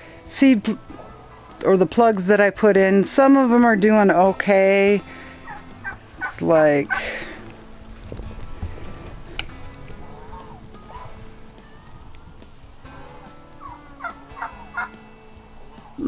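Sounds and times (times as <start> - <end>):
poultry calling and clucking: 0.9 - 1.6, 5.2 - 16.0.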